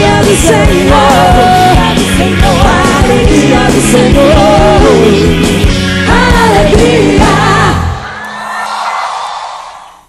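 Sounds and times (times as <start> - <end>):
audience cheering and applauding: 7.8 - 10.0.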